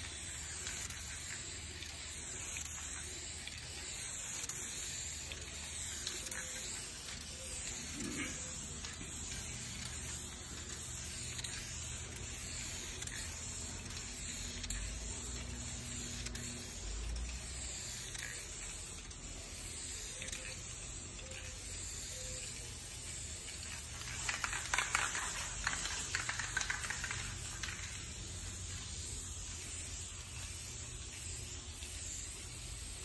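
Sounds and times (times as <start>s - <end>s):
aerosol spray can hissing: 0.0s - 33.0s.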